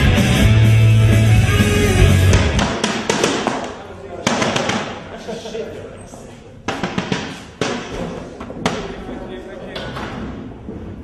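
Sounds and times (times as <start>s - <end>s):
sharp bangs: 2.2s - 5.1s, 6.7s - 9.2s.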